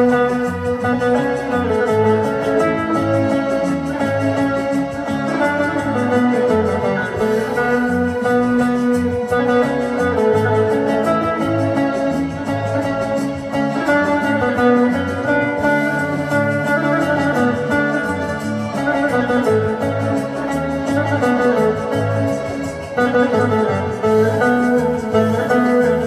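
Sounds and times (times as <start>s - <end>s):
organ-like keyboard accompaniment: 0.0s - 26.0s
plucked saz melody: 0.0s - 26.0s.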